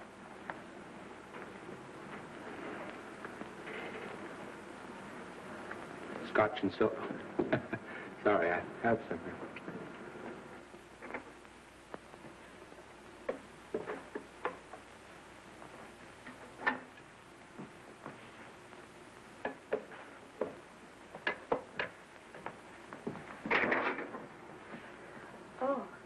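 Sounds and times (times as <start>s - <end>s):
faint steady hiss: 0.0s - 26.0s.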